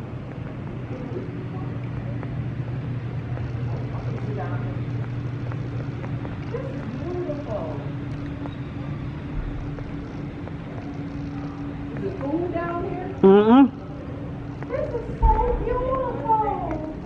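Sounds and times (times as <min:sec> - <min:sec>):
faint voices: 0:00.0 - 0:17.0
steady low hum: 0:00.0 - 0:17.0.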